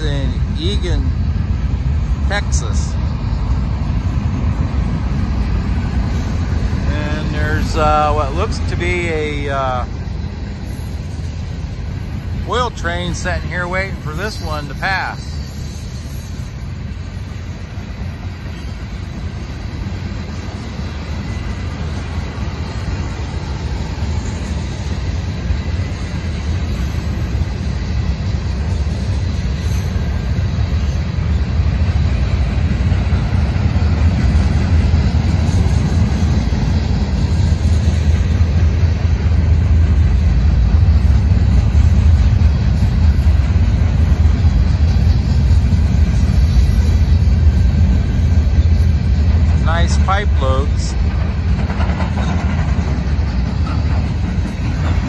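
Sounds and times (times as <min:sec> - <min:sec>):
freight train rumbling past: 0:00.0 - 0:55.0.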